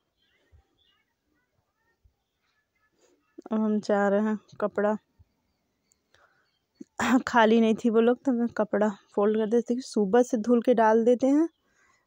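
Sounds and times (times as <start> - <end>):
faint soft breath: 6.0 - 6.7, 11.6 - 12.0.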